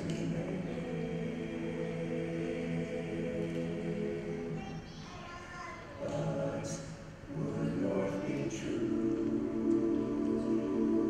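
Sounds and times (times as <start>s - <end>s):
male a cappella group singing: 0.0s - 4.7s, 6.0s - 11.0s.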